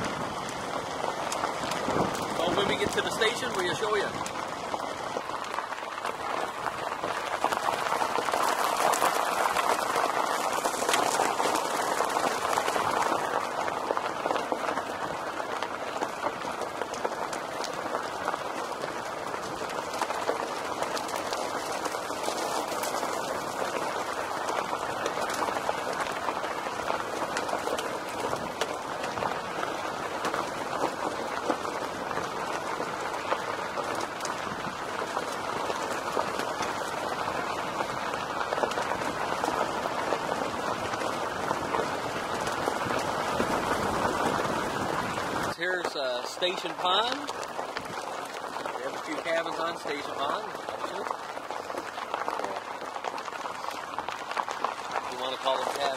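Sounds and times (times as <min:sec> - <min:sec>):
pebbles ticking: 0:00.0 - 0:55.9
tyres crunching on gravel: 0:00.0 - 0:55.9.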